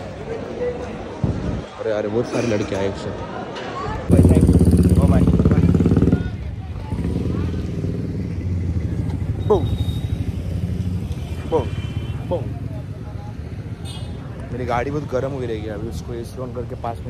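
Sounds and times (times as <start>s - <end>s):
motorcycle engine running: 4.1s - 11.0s.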